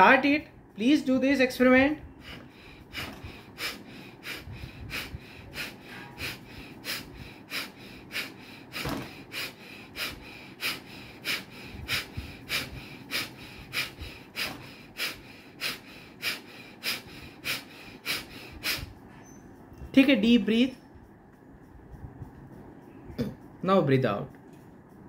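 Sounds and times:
man breathing rapidly and forcefully: 2.0s - 20.0s.

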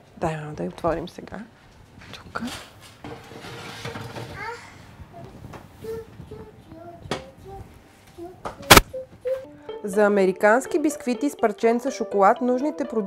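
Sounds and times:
metal tray scraping on oven rack: 3.0s - 4.4s.

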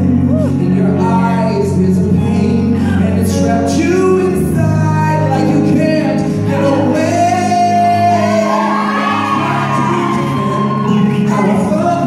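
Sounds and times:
keyboard: 0.0s - 12.0s
man singing: 0.0s - 12.0s.

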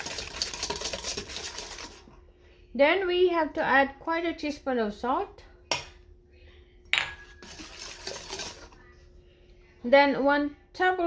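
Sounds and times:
whisk scraping in bowl: 0.0s - 2.2s, 7.2s - 8.8s
metal clink on mixing bowl: 6.9s - 7.4s.

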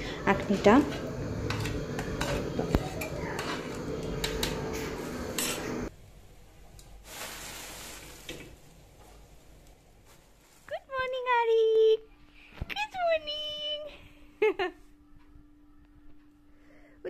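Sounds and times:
faint hiss: 7.0s - 8.6s.

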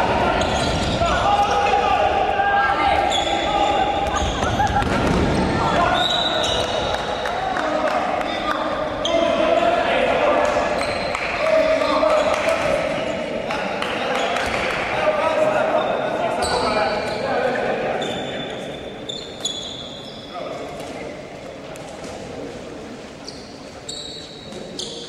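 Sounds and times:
voices calling out: 0.0s - 20.6s.

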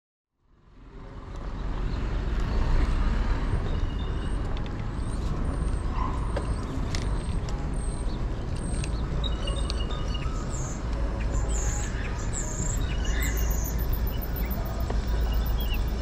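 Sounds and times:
road traffic rumble: 0.3s - 16.0s
small birds chirping: 3.9s - 16.0s.

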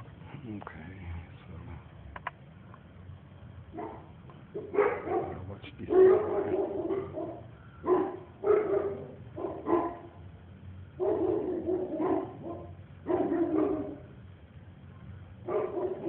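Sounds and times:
dog barking: 3.7s - 10.2s, 11.0s - 14.2s, 15.4s - 16.0s.

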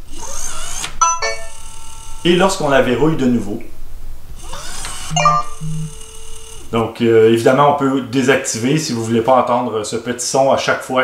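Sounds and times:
lock motor whirring: 0.0s - 2.3s, 4.4s - 5.2s
electronic unlock chime: 1.0s - 1.6s, 5.1s - 5.9s.

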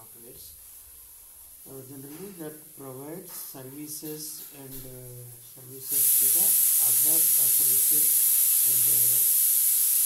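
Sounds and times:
recording noise hiss: 0.0s - 10.0s.

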